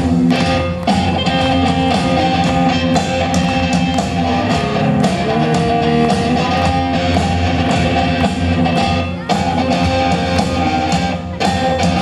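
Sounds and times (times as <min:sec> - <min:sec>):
electric guitars: 0:00.0 - 0:12.0
live rock band playing: 0:00.0 - 0:12.0.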